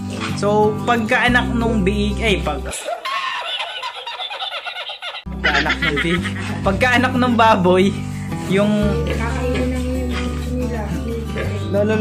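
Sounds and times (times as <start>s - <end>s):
man cackling with laughter: 2.8s - 6.8s.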